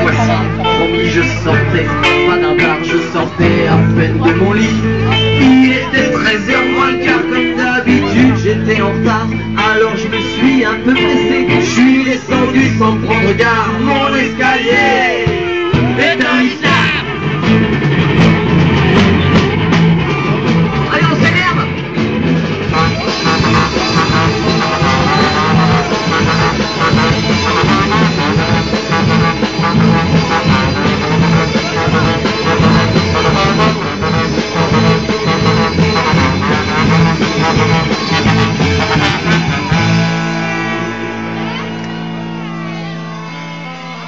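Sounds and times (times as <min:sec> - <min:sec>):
drums: 0:00.0 - 0:44.0
guitar: 0:00.0 - 0:44.0
live band playing: 0:00.0 - 0:44.0.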